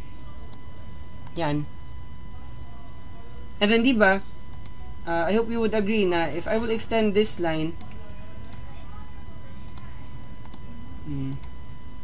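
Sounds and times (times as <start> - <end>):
low hum with high tone: 0.0 - 12.0
computer mouse clicking: 4.4 - 4.8, 9.6 - 10.6.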